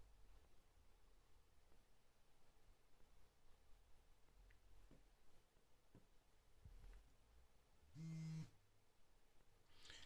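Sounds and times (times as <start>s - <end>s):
phone vibrating on wooden desk: 8.0s - 8.6s.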